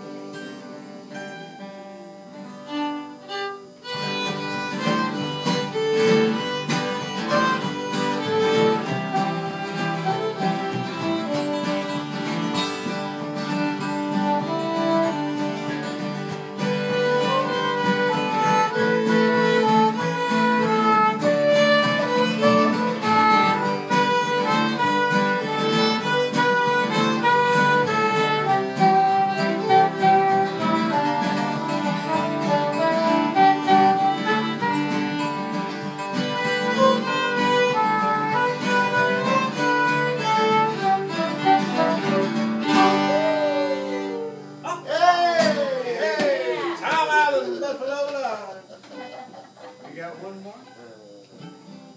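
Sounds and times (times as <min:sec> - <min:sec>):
fiddle melody: 0:00.0 - 0:45.1
strummed acoustic guitars: 0:00.0 - 0:48.3, 0:51.3 - 0:51.9
soprano saxophone: 0:02.6 - 0:12.2, 0:13.5 - 0:44.6.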